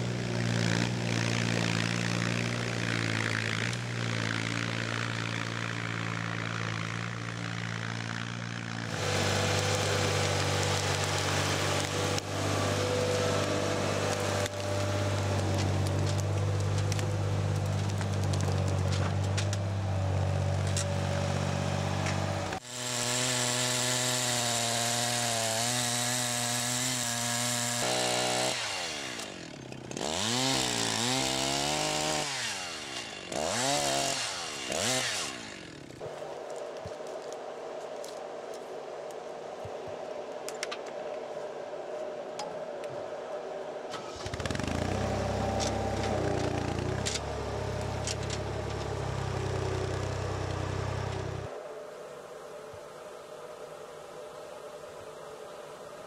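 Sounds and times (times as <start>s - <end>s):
chainsaw cutting and revving: 0.0s - 36.2s, 44.0s - 51.5s.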